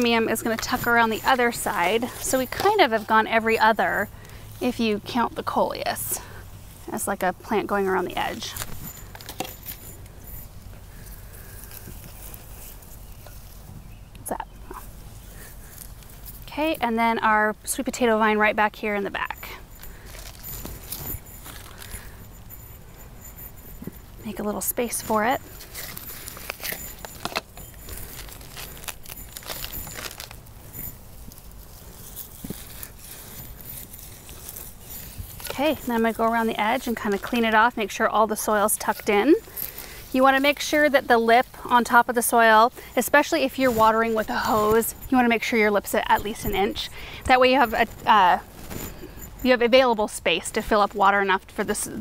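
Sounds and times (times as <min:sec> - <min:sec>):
soil rustling: 0:00.0 - 0:52.0
light crackles: 0:18.9 - 0:49.8.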